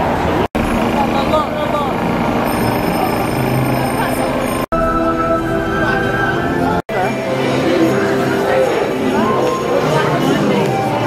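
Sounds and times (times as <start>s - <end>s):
passers-by talking: 0.0s - 11.0s
traffic: 0.0s - 11.0s.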